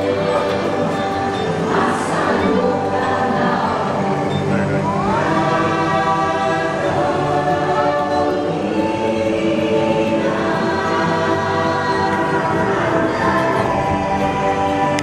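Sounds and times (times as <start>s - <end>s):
choir singing sustained notes: 0.0s - 15.0s
music: 0.0s - 15.0s.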